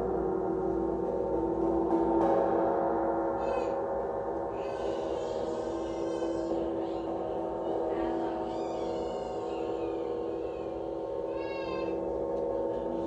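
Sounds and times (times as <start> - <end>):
singing bowls ringing: 0.0 - 13.0.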